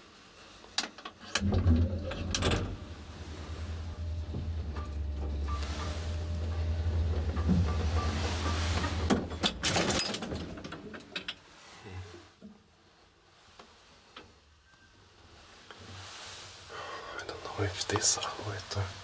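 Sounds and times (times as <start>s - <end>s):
elevator motor hum: 1.4s - 10.9s.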